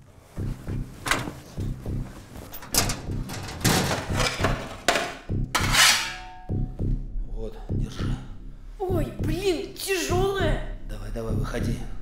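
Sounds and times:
knocks and rustles of people moving: 0.0s - 5.7s
low pulsing suspense music: 0.2s - 12.0s.

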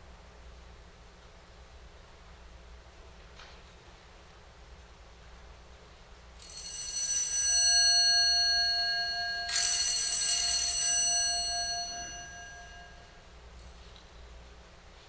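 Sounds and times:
bell ringing: 6.4s - 13.8s.

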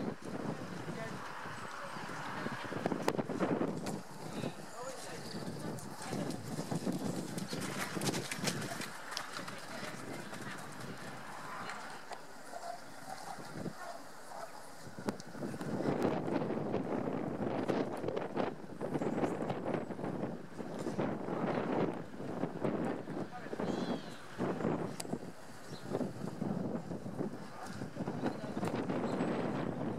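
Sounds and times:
horse hoofbeats on gravel: 4.9s - 12.0s.

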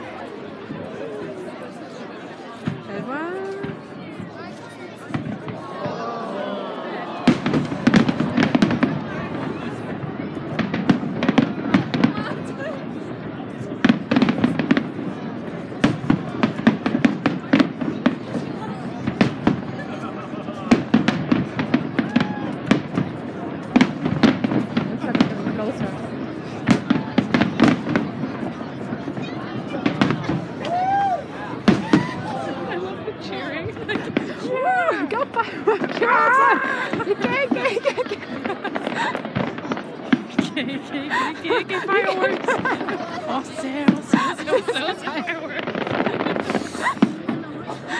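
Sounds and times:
fireworks bursting with bangs: 2.6s - 6.0s, 7.2s - 47.9s
fireworks crackling: 7.2s - 47.9s.

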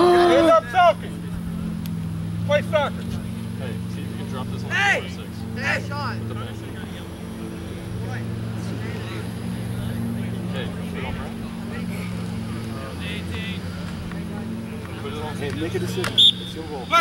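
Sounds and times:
engine droning: 0.0s - 17.0s
faint voices: 0.0s - 17.0s.

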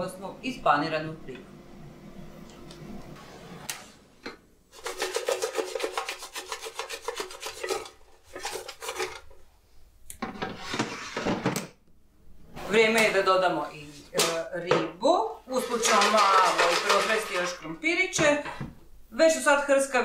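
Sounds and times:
basket scraping rattles: 15.5s - 17.7s.

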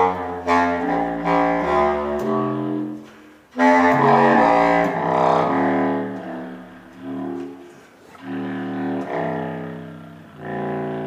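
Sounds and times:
low saxophone notes: 0.0s - 11.0s.

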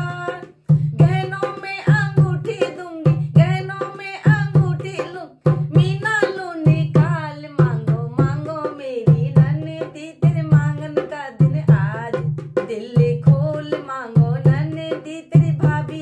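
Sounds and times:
hand drum beat: 0.0s - 16.0s
woman singing folk song: 0.0s - 16.0s.

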